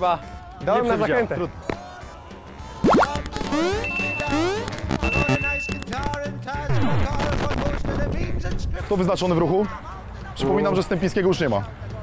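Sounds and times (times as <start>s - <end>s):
electronic swoops: 2.8s - 5.1s
eight-bit game music: 2.8s - 6.0s
electronic bleeps and beeps: 2.8s - 6.0s.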